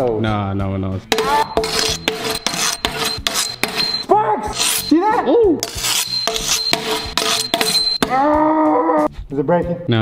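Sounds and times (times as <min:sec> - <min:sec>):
metal blades striking brick: 0:01.1 - 0:05.0, 0:05.6 - 0:08.2.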